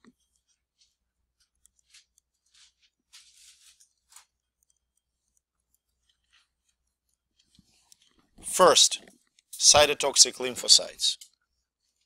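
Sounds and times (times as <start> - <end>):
stylus scratching on tablet screen: 0.0 - 8.4.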